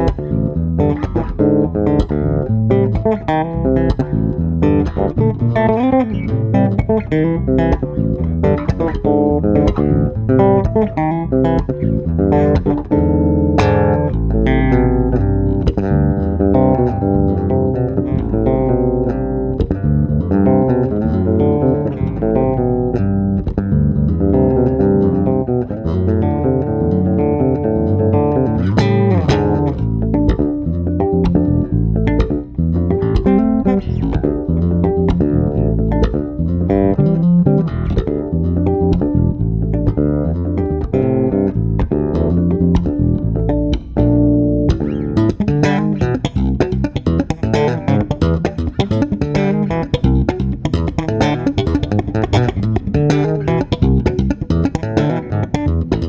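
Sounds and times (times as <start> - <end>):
electric bass plucked solo: 0.0 - 56.0.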